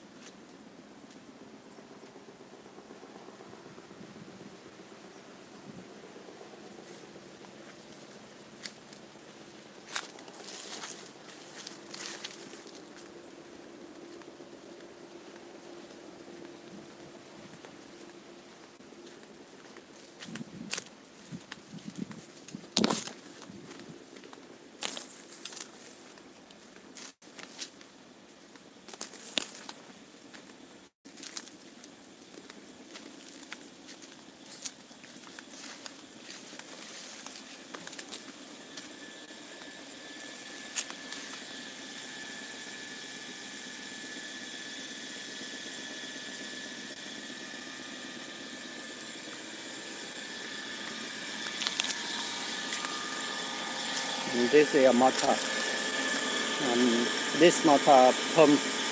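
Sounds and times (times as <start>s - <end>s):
electric water pump whine: 0.0s - 27.2s, 31.1s - 58.9s
footsteps on dry leaves: 6.8s - 27.8s, 28.9s - 30.5s, 31.1s - 43.0s, 47.0s - 58.9s.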